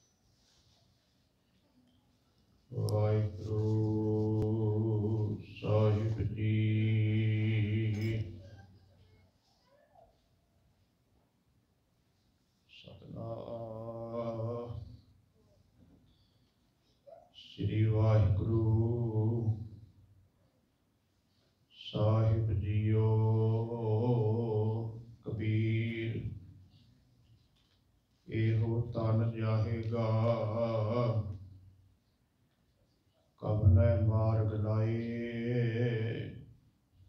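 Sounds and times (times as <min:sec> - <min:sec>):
man chanting into microphone: 0:02.7 - 0:08.4, 0:12.7 - 0:15.0, 0:17.4 - 0:19.9, 0:21.8 - 0:26.6, 0:28.2 - 0:31.4, 0:33.4 - 0:36.6.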